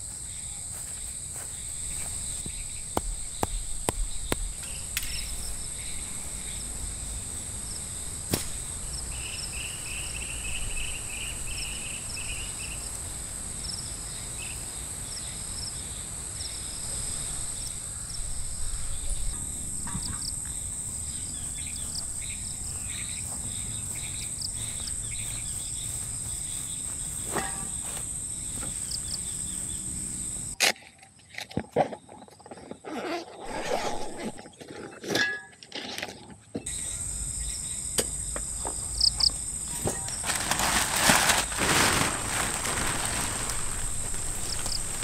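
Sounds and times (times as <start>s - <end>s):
insects droning: 0.0s - 35.0s, 36.1s - 45.0s.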